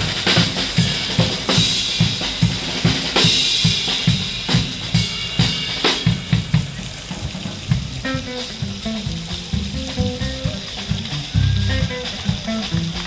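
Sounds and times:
drum kit cymbals: 0:00.0 - 0:13.0
electric bass notes: 0:07.2 - 0:13.0
guitar notes: 0:08.0 - 0:13.0.

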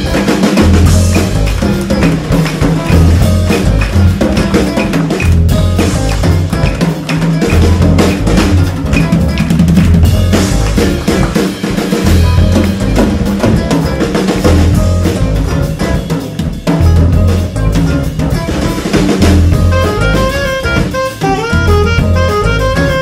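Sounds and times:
busy drum kit: 0:00.0 - 0:23.0.

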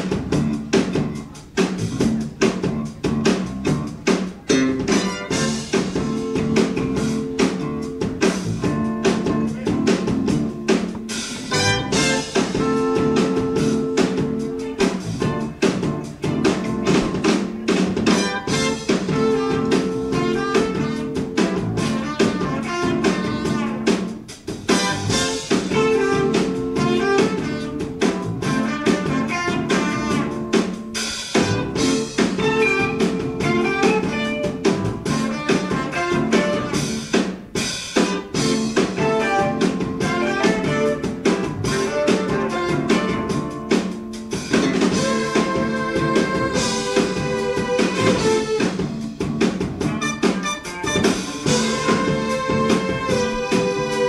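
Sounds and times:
band playing funk: 0:00.0 - 0:54.0
busy drum kit: 0:00.0 - 0:54.0
low bass riff: 0:00.1 - 0:37.2, 0:38.4 - 0:54.0.

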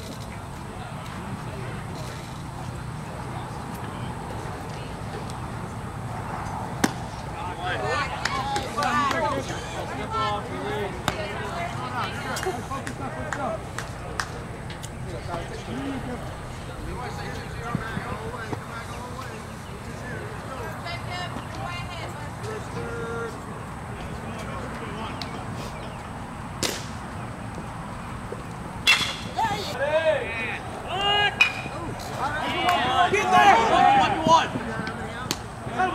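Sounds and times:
outdoor ballpark background noise: 0:00.0 - 0:35.9
steady background noise: 0:00.0 - 0:35.9
baseball bat crack: 0:06.4 - 0:07.3, 0:11.0 - 0:11.4, 0:26.6 - 0:27.1, 0:28.8 - 0:29.5, 0:31.4 - 0:32.9
baseball popping into leather mitt: 0:06.8 - 0:07.0.

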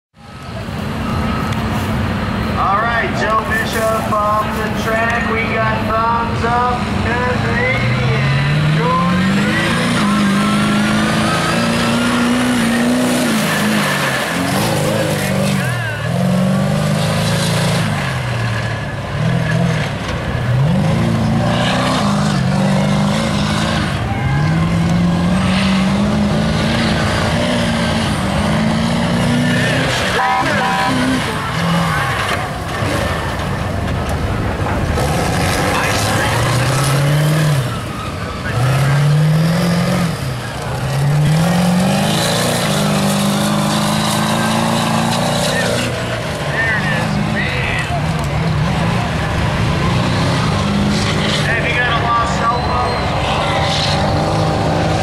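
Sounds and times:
diesel truck engine revving: 0:00.1 - 0:55.0.

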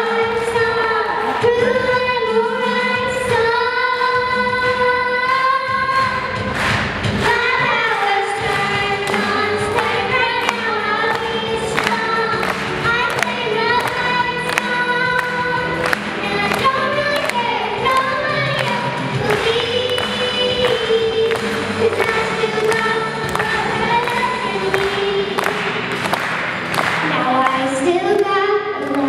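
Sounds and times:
girls singing into microphones: 0:00.0 - 0:26.1, 0:27.0 - 0:29.0
backing track with beat: 0:00.1 - 0:29.0.

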